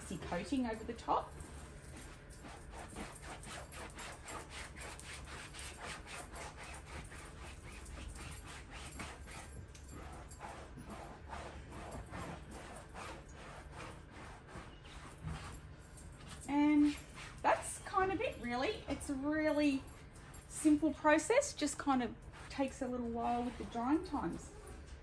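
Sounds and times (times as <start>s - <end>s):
brush scrubbing fabric: 2.4s - 15.6s, 20.5s - 24.4s.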